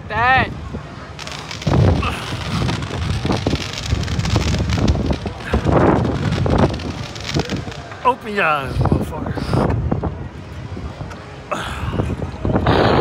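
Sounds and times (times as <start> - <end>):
rushing air buffeting microphone: 0.0 - 13.0.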